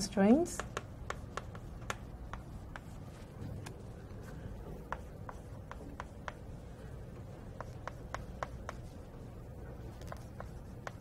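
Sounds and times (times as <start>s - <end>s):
room hum: 0.0s - 11.0s
pen tapping and stroking: 0.5s - 9.2s, 9.8s - 11.0s.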